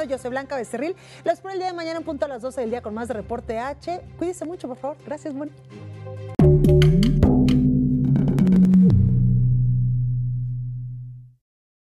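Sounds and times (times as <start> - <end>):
low synth tone: 6.4 - 11.4.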